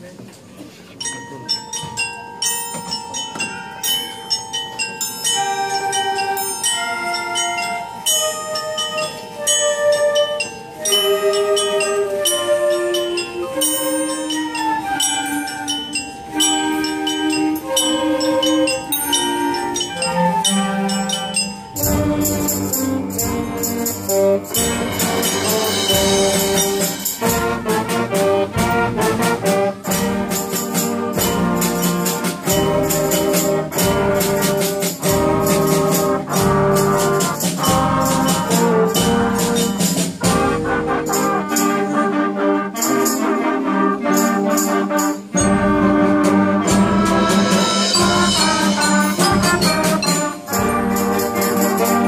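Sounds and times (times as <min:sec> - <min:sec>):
mallet keyboard melody: 0:00.8 - 0:52.0
jingling bells: 0:00.9 - 0:52.0
concert band with brass and drums: 0:01.5 - 0:52.0.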